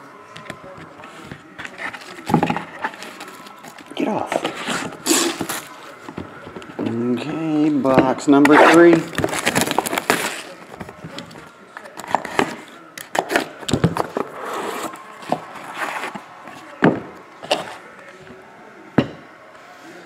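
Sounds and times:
cardboard box opening: 0.9s - 6.4s, 8.5s - 11.4s
plastic wrap crinkling: 1.0s - 6.7s, 8.5s - 16.8s.

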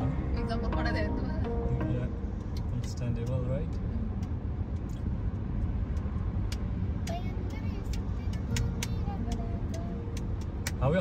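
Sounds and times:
road and tyre rumble: 0.0s - 11.0s.

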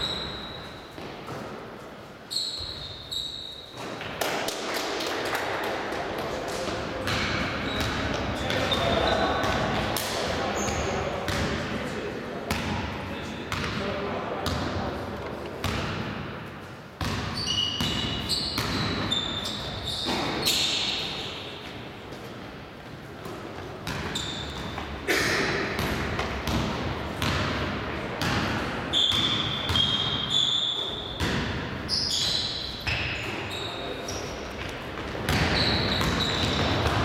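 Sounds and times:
sneakers squeaking on floor: 0.0s - 4.2s, 6.5s - 11.6s, 15.6s - 22.4s, 23.2s - 37.0s
basketball bouncing on court: 7.0s - 9.8s, 10.7s - 11.6s, 12.5s - 12.9s, 13.5s - 13.8s, 14.4s - 14.8s, 15.6s - 16.4s, 17.0s - 19.4s, 23.2s - 24.9s, 25.6s - 30.3s, 31.1s - 33.2s, 35.0s - 37.0s.

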